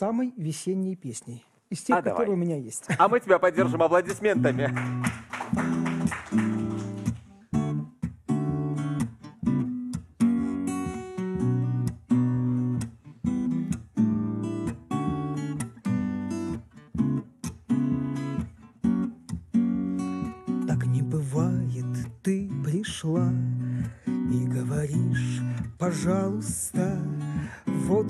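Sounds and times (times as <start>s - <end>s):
acoustic guitar strumming: 3.6s - 28.0s.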